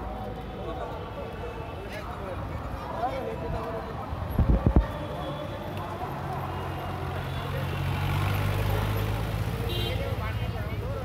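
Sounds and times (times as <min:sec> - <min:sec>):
vehicle engine passing: 0:07.1 - 0:09.6.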